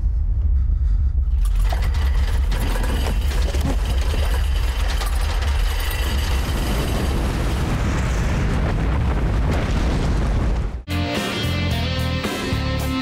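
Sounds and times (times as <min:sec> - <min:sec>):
deep steady rumble: 0:00.0 - 0:10.8.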